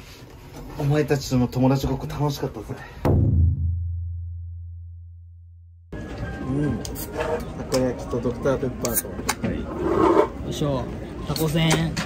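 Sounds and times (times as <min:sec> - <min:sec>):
deep bass impact tone: 0:03.1 - 0:05.9.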